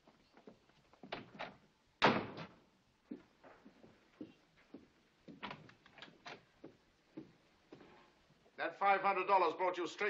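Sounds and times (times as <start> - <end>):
door slamming shut: 2.0 - 2.5.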